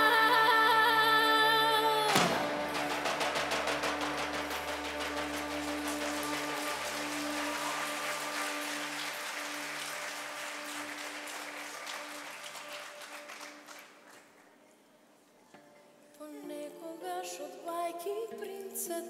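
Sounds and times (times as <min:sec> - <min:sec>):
held orchestral chord: 0:02.1 - 0:13.4
audience applause: 0:02.2 - 0:14.9.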